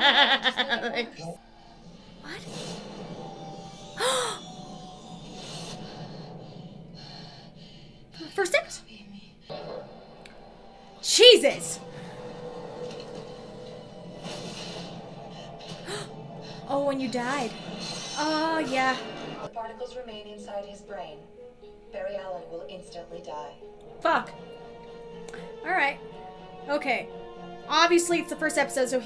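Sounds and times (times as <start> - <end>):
faint background music: 0.0 - 29.0
dramatic background score: 0.1 - 29.0.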